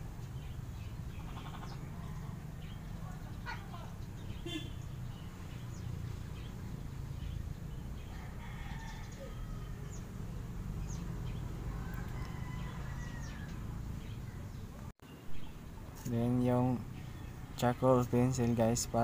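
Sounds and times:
faint distant bird calls: 0.0s - 19.0s.

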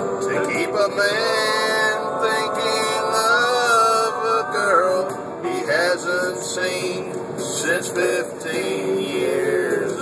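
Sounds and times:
country music accompaniment: 0.0s - 10.0s
man singing country song: 0.0s - 10.0s.

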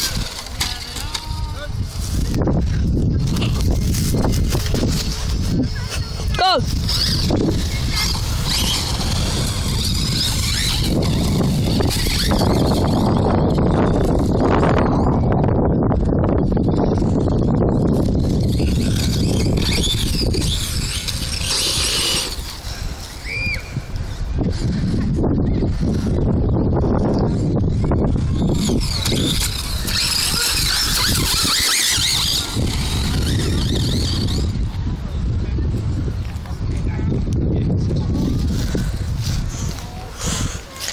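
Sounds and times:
tyres scrabbling over dirt: 0.0s - 14.5s, 17.9s - 23.2s, 28.2s - 34.6s
toy car motor whining: 6.2s - 14.9s, 17.2s - 23.2s, 28.0s - 34.6s.

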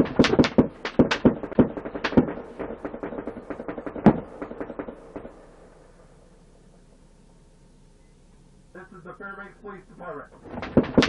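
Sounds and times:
rapid gunshots: 0.0s - 5.7s, 10.4s - 11.0s.

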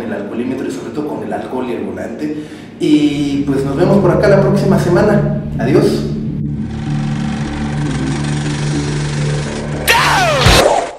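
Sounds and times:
low droning sound bed: 2.8s - 9.9s
whoosh sweeping down in pitch: 3.2s - 10.9s.

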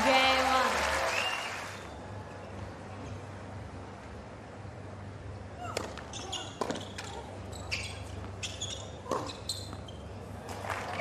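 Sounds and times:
tennis shoes squeaking: 5.6s - 10.3s.

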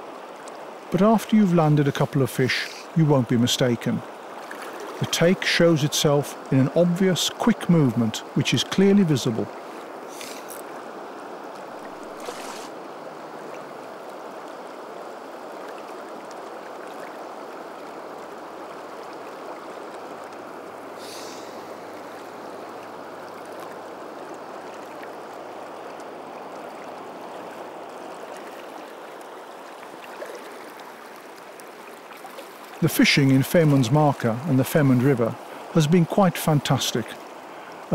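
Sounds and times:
river water rushing: 0.0s - 37.9s.

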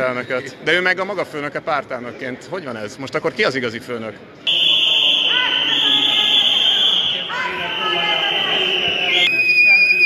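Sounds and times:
shrill steady alarm tone: 4.5s - 10.0s.

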